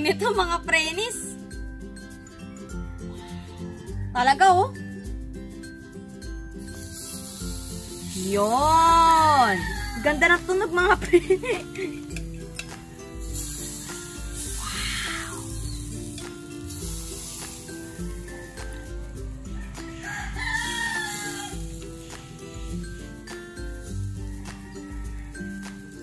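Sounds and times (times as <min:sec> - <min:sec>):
background music with steady beat: 0:00.0 - 0:26.0
rooster crowing: 0:09.0 - 0:10.3, 0:14.5 - 0:15.6, 0:19.3 - 0:21.7, 0:24.2 - 0:25.9.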